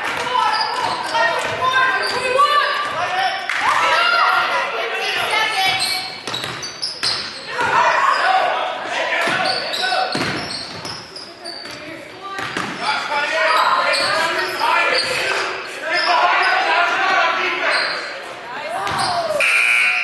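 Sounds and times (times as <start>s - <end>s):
voices of players and spectators: 0.0s - 20.0s.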